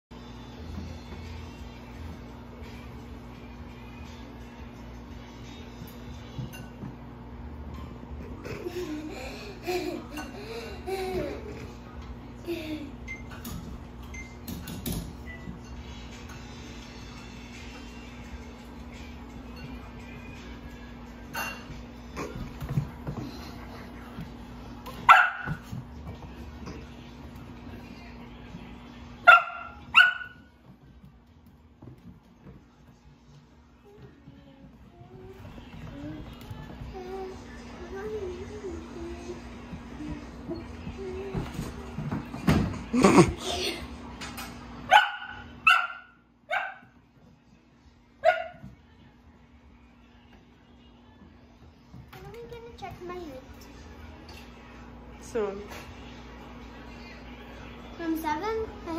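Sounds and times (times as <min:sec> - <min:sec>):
puppy barking: 0:25.0 - 0:25.7, 0:29.3 - 0:30.5, 0:44.9 - 0:47.0, 0:48.2 - 0:48.6.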